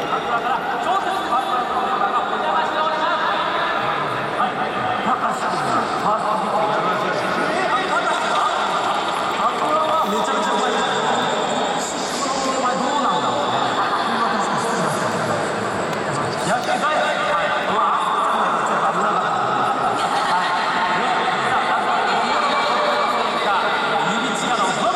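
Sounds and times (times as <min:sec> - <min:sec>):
crowd noise: 0:00.0 - 0:24.9
speech over public-address system: 0:00.0 - 0:24.9.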